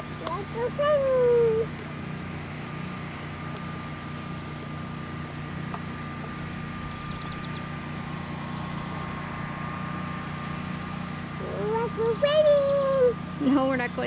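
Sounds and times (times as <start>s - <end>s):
engine humming: 0.0s - 14.0s
faint steady whine: 0.0s - 14.0s.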